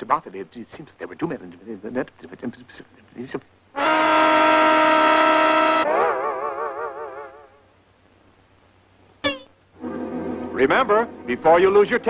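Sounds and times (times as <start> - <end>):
cartoon horn blast wobbling: 3.8 - 7.6.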